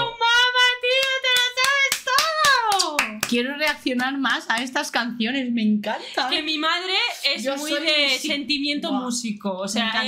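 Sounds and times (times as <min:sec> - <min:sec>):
hand claps: 0:00.9 - 0:04.8.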